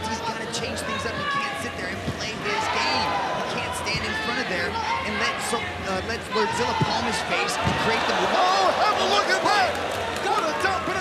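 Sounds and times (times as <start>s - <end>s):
arena crowd shouting: 2.4s - 11.0s.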